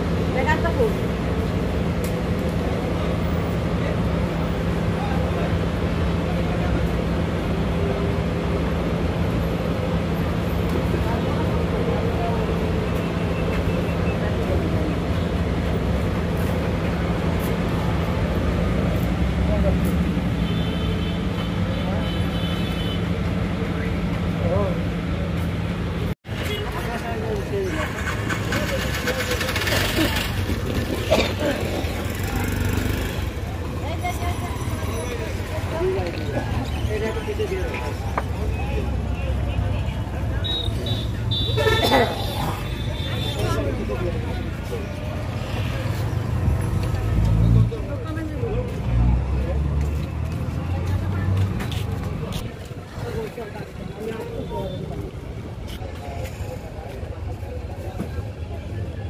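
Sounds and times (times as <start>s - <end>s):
people's voices: 0.0s - 59.0s
street traffic: 0.0s - 59.0s.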